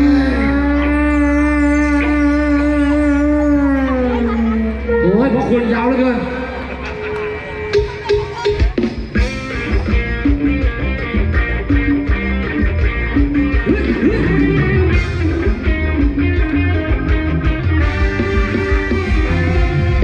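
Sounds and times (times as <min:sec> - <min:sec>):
live band playing dance music: 0:00.0 - 0:20.0.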